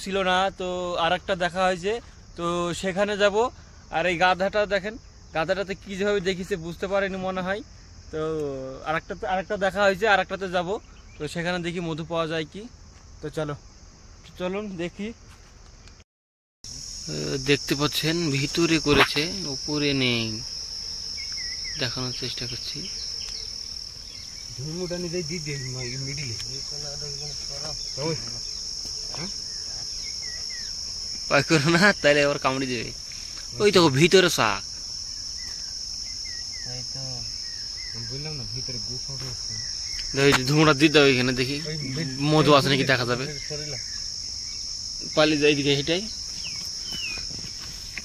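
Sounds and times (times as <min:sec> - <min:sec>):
insects trilling: 0:00.0 - 0:16.0, 0:16.6 - 0:48.0
people talking: 0:17.1 - 0:20.4, 0:24.6 - 0:28.4, 0:31.3 - 0:34.6, 0:40.2 - 0:43.8, 0:45.0 - 0:46.1.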